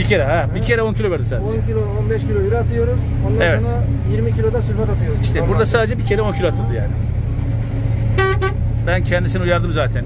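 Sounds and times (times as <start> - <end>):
combine harvester drone: 0.0 - 10.0.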